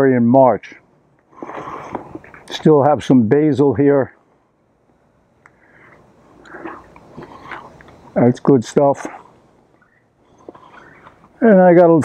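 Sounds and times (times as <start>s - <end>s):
person chewing leaves: 6.4s - 8.0s.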